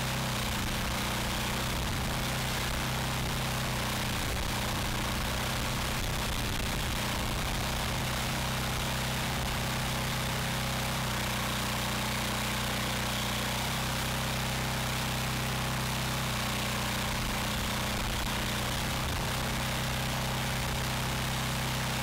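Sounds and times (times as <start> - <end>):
log splitter engine running: 0.0 - 22.0.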